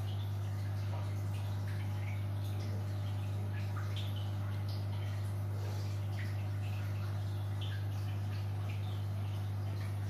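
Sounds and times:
aquarium air stone bubbling: 0:00.0 - 0:10.0.

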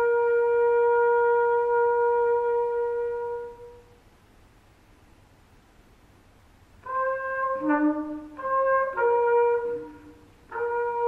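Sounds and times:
solo trumpet sustained note: 0:00.0 - 0:04.0, 0:06.8 - 0:11.0.

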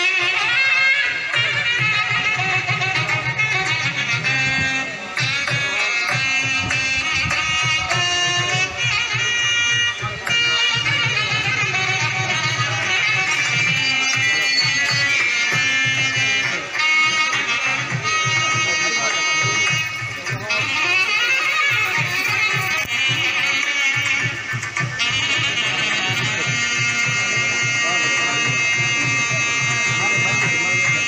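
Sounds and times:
murmur of voices: 0:00.0 - 0:31.0
wind instrument long note: 0:00.0 - 0:31.0
drum beat: 0:01.1 - 0:18.8, 0:19.4 - 0:27.7.

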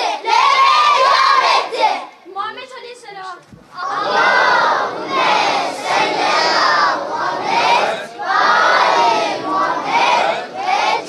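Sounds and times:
children's choir shouting a chant: 0:00.0 - 0:02.1, 0:03.8 - 0:11.0.

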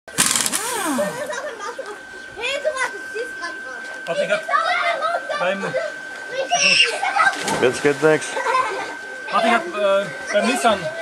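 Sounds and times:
pneumatic impact wrench hammering: 0:00.1 - 0:01.4
voices talking: 0:00.6 - 0:11.0.

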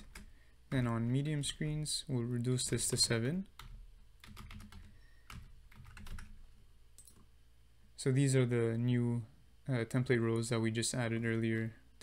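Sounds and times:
computer keyboard typing: 0:00.0 - 0:00.3, 0:02.6 - 0:06.4.

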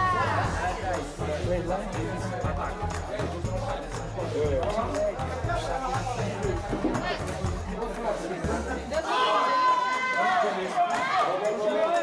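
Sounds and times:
background music: 0:00.0 - 0:12.0
voices chattering: 0:00.0 - 0:12.0.

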